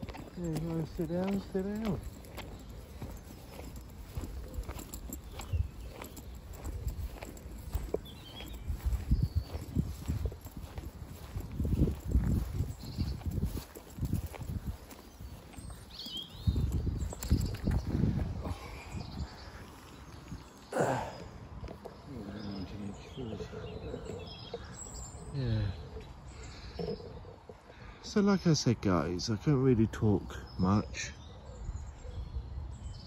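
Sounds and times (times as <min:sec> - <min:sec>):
footsteps on path and grass: 0:00.0 - 0:29.2.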